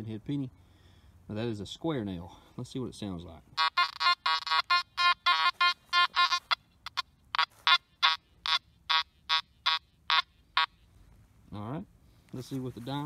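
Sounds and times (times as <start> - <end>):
metal detector beeps: 3.6 - 10.8.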